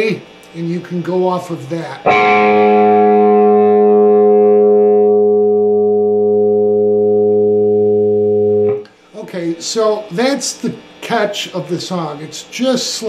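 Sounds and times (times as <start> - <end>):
sustained electric guitar note: 2.1 - 8.9.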